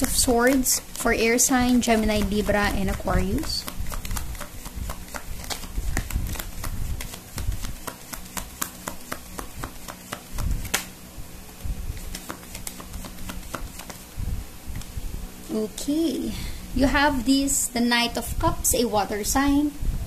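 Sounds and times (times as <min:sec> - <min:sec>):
cards being shuffled: 0:00.0 - 0:11.0, 0:11.9 - 0:14.1.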